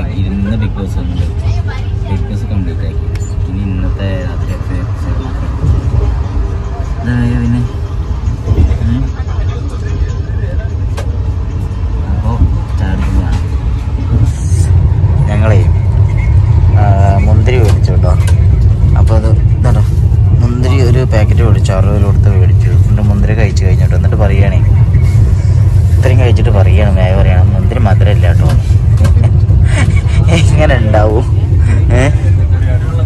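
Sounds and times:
people talking: 0.0s - 7.8s, 8.4s - 11.2s, 12.0s - 15.9s, 16.7s - 33.0s
train rumbling: 0.0s - 33.0s.

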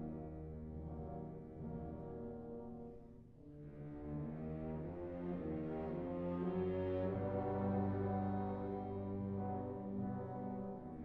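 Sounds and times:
wind ensemble playing low chords: 0.2s - 11.0s.

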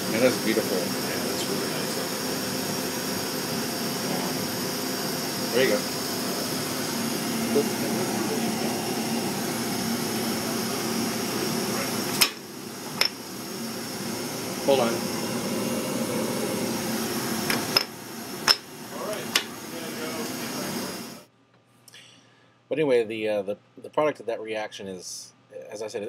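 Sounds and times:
steady machine hum: 0.0s - 21.3s.

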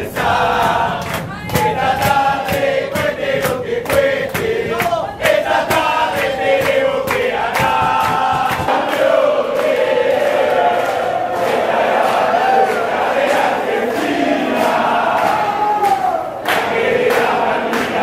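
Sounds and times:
crowd chanting: 0.0s - 18.0s
sharp drum beats: 0.2s - 8.9s.

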